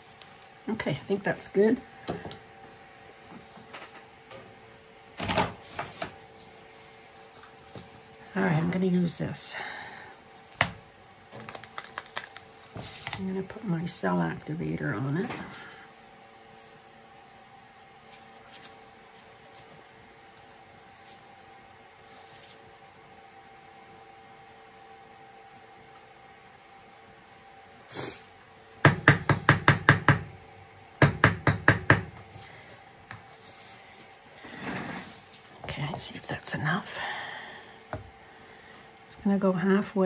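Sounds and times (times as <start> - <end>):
faint room hum: 0.0 - 40.0.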